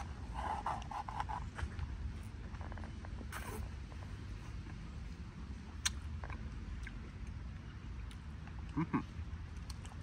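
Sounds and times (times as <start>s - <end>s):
low steady rumble: 0.0s - 10.0s.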